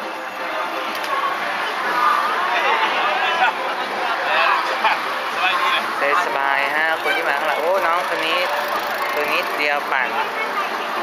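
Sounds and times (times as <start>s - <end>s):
steady background noise: 0.0s - 11.0s
people talking: 0.4s - 11.0s.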